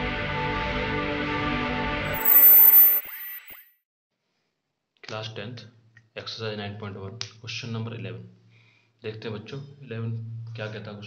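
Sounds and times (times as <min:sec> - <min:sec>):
high chime ringing: 0:02.1 - 0:03.6.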